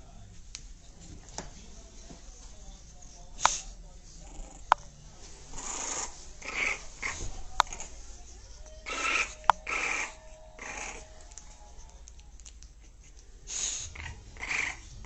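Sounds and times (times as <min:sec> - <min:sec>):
dog breathing noisily: 0:08.8 - 0:11.7, 0:12.8 - 0:15.0.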